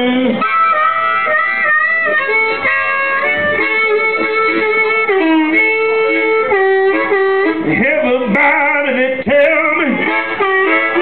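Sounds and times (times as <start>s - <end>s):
blues band music: 0.0s - 11.0s.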